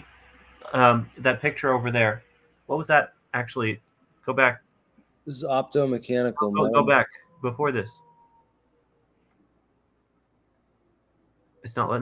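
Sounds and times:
voice trailing off: 5.3 - 8.2.

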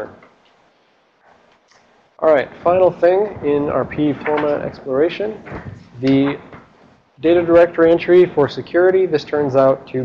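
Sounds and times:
man speaking: 2.2 - 6.5, 7.2 - 10.0.

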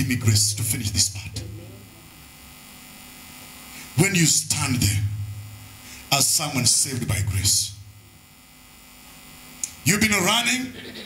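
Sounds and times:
man speaking: 0.0 - 1.6, 4.0 - 5.2, 9.8 - 10.8
low electrical mains hum: 0.0 - 11.0.

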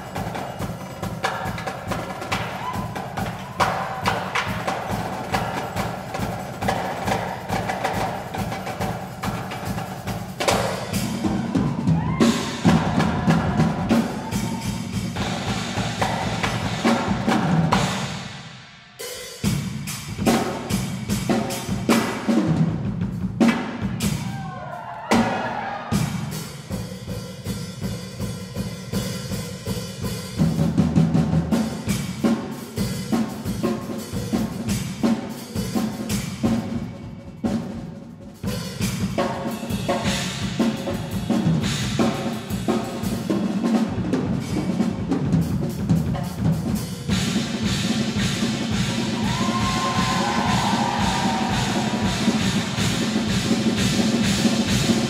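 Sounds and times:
drum kit played fast: 0.0 - 55.0.

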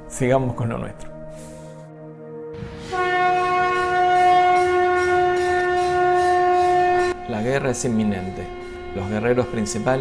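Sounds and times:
conch shell trumpet note: 1.1 - 10.0.

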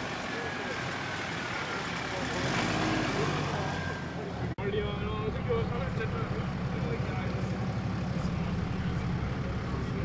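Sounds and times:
people talking: 0.0 - 10.0
vehicles idling: 0.0 - 10.0.

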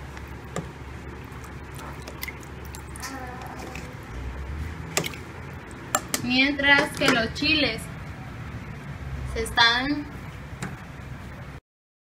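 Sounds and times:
spatula stirring broth in pot: 0.0 - 4.1
low steady hum: 0.0 - 11.6.

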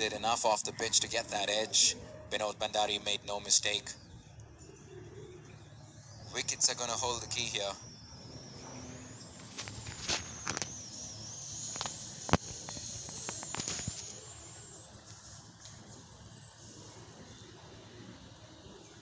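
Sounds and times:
low steady background ambience: 0.0 - 19.0
thin high whine: 0.0 - 19.0
sharp clicks: 9.3 - 14.2.

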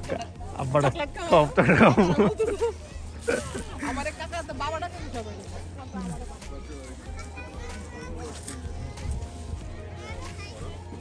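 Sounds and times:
children shouting and chattering: 0.0 - 11.0.

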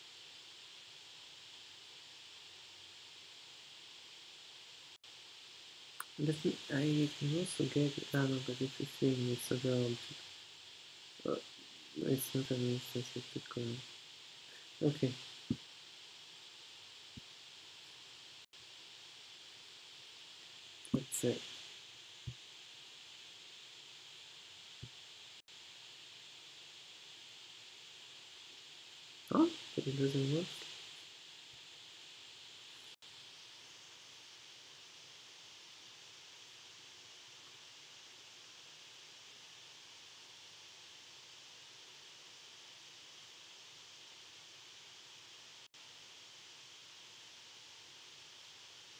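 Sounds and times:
steady background hiss: 0.0 - 48.9.

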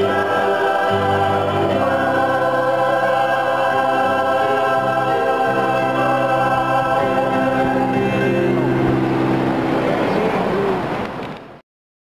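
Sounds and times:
church choir singing: 0.0 - 10.4
crowd noise in large hall: 0.0 - 11.6.

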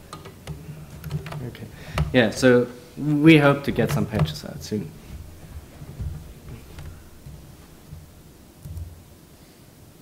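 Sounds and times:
laptop keyboard typing: 0.0 - 2.2, 5.9 - 9.0.

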